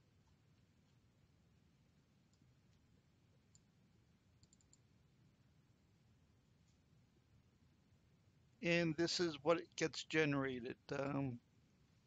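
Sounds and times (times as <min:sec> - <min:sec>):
computer mouse clicks: 0:04.4 - 0:04.9.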